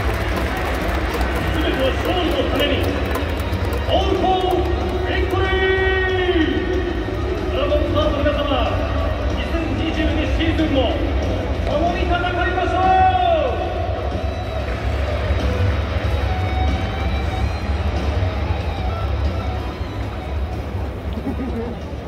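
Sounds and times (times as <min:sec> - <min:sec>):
crowd chatter: 0:00.0 - 0:22.0
stadium music over loudspeakers: 0:00.0 - 0:22.0.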